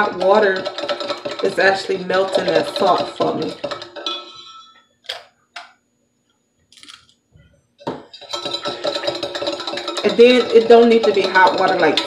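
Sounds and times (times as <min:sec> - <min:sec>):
spoon clinking in tumbler: 0:00.0 - 0:04.8, 0:08.1 - 0:12.0.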